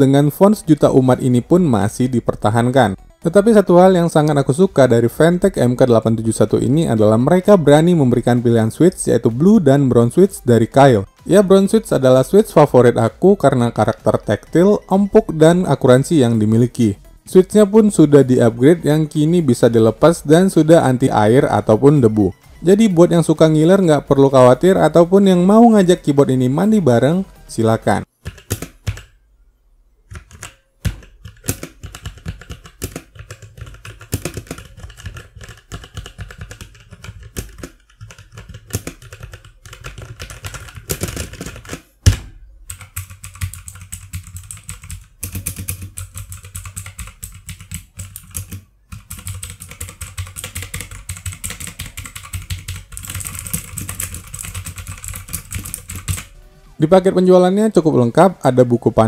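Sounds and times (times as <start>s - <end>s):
mechanical keyboard key clacks: 30.1s - 41.8s, 42.7s - 56.3s.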